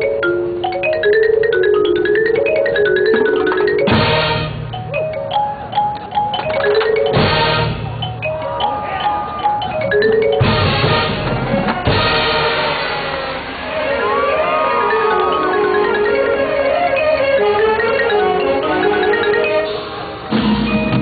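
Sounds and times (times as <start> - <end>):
mallet percussion lines: 0.0 - 12.3, 14.0 - 21.0
marching band ensemble hits: 3.0 - 4.9, 6.4 - 8.5, 9.1 - 13.7, 19.6 - 21.0.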